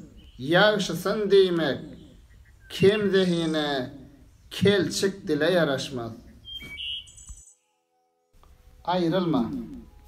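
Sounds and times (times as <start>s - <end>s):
faint high-pitched tones: 7.5s - 10.0s.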